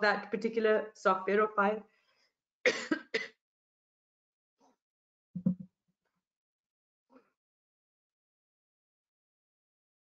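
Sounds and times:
woman coughing: 2.7 - 3.4.

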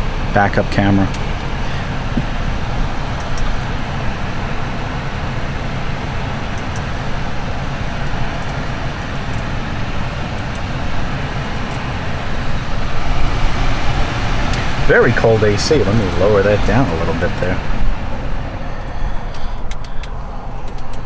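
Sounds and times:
car blower rushing: 0.0 - 21.0
low engine rumble: 0.0 - 21.0.

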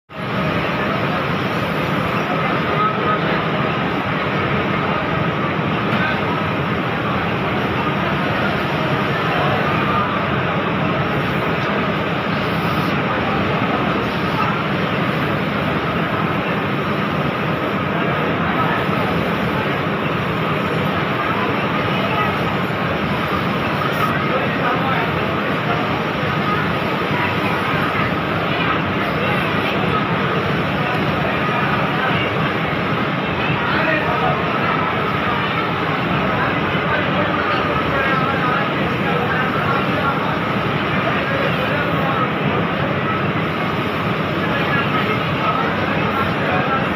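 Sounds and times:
factory machinery noise: 0.1 - 46.9
faint distant voices: 0.1 - 46.9.

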